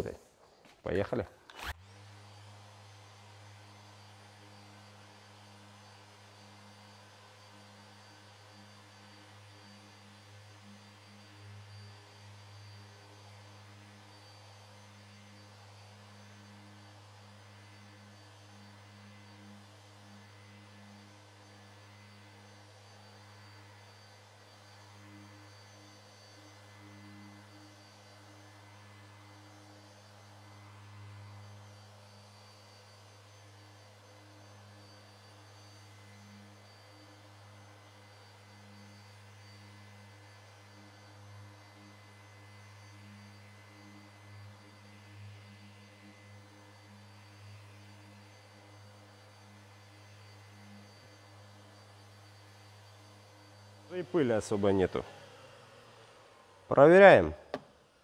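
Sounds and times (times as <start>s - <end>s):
orbital sander humming: 1.5s - 57.8s.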